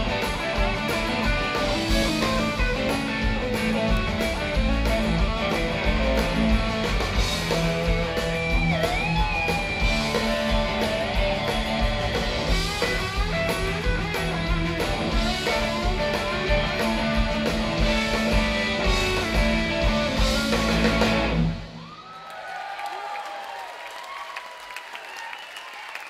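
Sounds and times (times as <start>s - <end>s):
rock band playing live: 0.0s - 21.9s.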